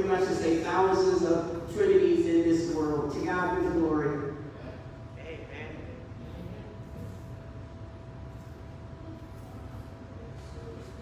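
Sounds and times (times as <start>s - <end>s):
faint steady hum: 0.0s - 11.0s
low room rumble: 0.0s - 11.0s.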